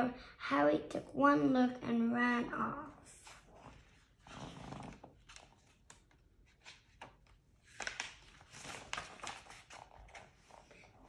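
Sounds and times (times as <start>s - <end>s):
book pages rustling and turning: 3.1s - 11.0s.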